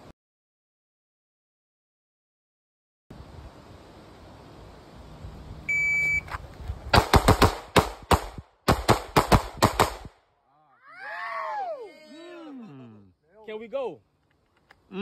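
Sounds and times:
shot timer beep: 5.7 - 6.3
pistol firing rapid shots: 7.0 - 10.1
person speaking: 11.7 - 14.0.

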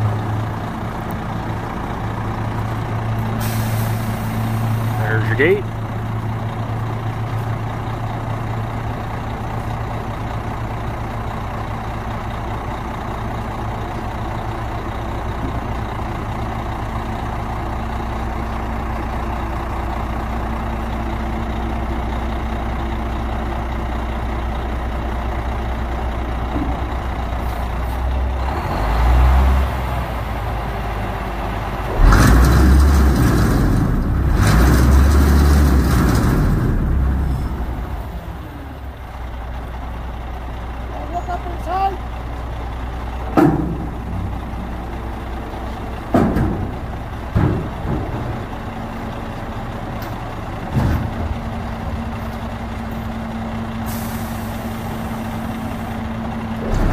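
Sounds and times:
diesel engine running: 0.0 - 56.9
loud noisy mechanical roar: 31.7 - 38.8, 53.8 - 56.9.

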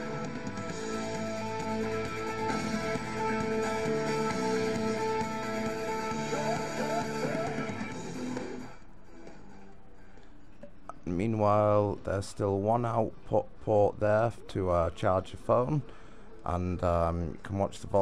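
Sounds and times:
music from small speaker: 0.0 - 10.8.

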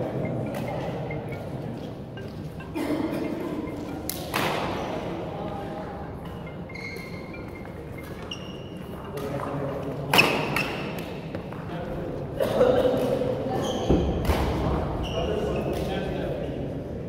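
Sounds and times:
racquets striking shuttlecock: 0.2 - 2.6, 3.3 - 5.2, 6.2 - 11.6
shoes squeaking on wooden floor: 6.4 - 9.6, 13.5 - 14.1.

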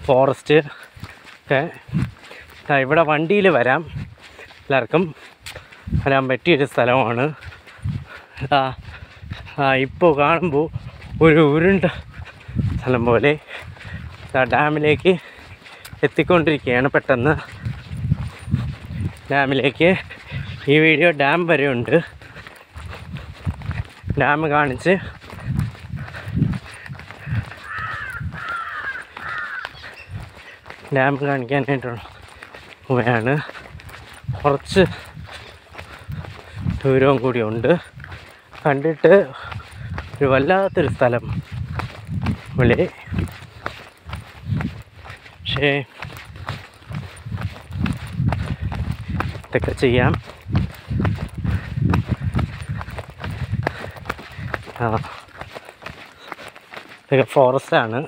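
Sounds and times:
footsteps on paved road: 0.0 - 58.0
crow cawing: 26.9 - 30.7.

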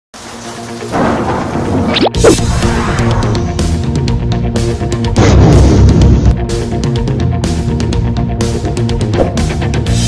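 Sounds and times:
intro music: 0.4 - 10.0.

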